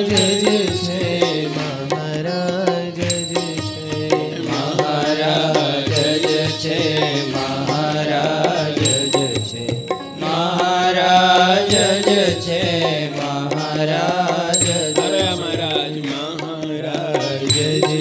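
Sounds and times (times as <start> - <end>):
high ringing chime: 0.0 - 1.4, 3.0 - 4.8, 5.9 - 7.5, 8.8 - 13.0, 14.5 - 16.3, 17.5 - 18.0.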